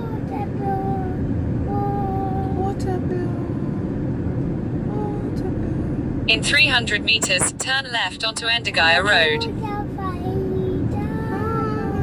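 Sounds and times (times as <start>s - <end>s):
car driving on dirt road: 0.0s - 12.0s.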